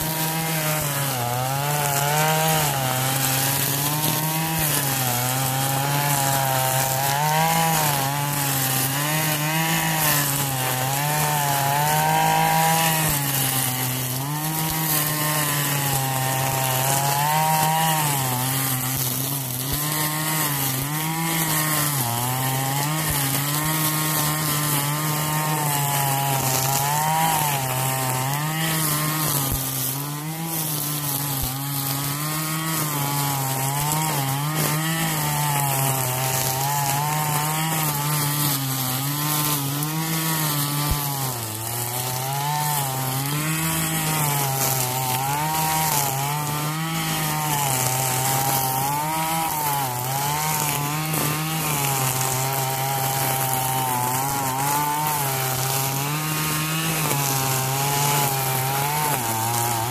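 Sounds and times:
string trimmer cutting grass: 0:00.0 - 0:59.9.

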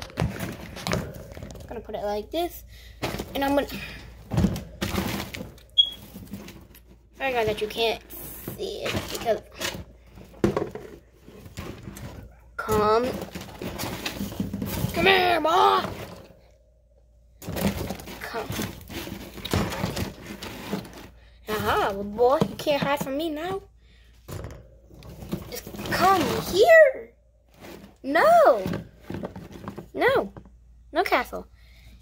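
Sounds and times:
plastic hideout rustling on bedding: 0:00.0 - 0:16.4, 0:17.4 - 0:23.6, 0:27.5 - 0:30.2.

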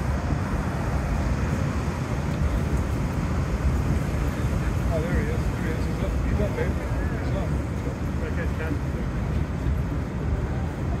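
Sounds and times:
ocean surf breaking: 0:00.0 - 0:11.0
wind on microphone: 0:00.0 - 0:11.0.

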